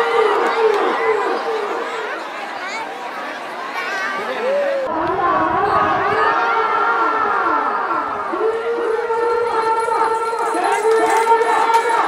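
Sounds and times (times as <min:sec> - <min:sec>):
crowd yelling and whooping: 0:00.0 - 0:02.2, 0:04.1 - 0:12.0.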